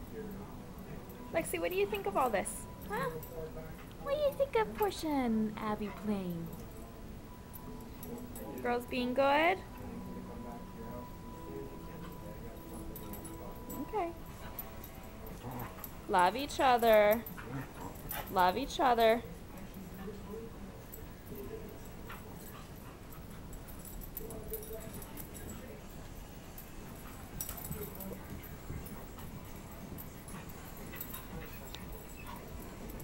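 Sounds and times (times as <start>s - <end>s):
soft dog noises: 0.0s - 33.0s
dog whining softly: 25.2s - 33.0s.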